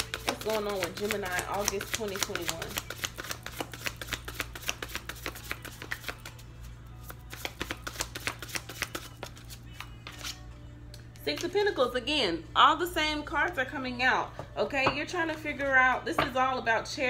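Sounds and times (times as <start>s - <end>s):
cards being shuffled: 0.0s - 10.4s.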